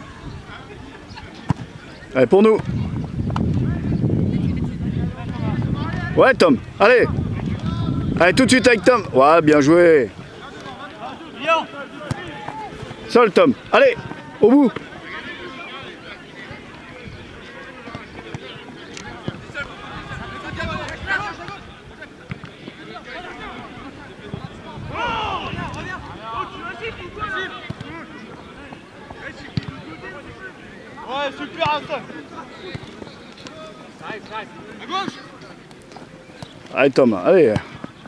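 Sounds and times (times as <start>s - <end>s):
voices calling: 0.0s - 38.0s.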